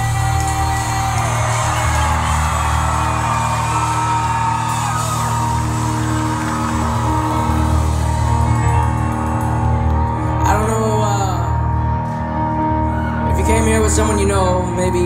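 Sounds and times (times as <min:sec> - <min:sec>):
crowd yelling and whooping: 0:00.0 - 0:13.4
sustained keyboard chords: 0:00.0 - 0:15.0.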